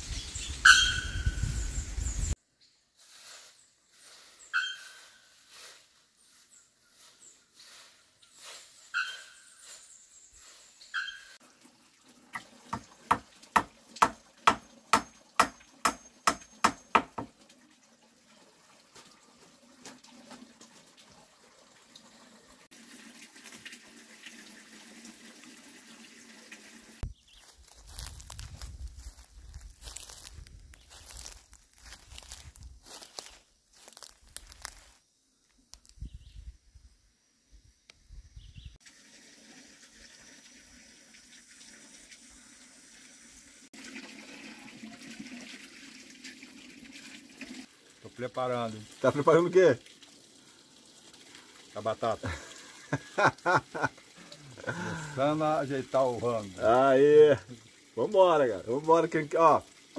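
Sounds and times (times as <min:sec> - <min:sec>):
bird ringing calls: 0:00.4 - 0:01.5, 0:04.5 - 0:05.2, 0:08.9 - 0:09.7, 0:10.9 - 0:11.4.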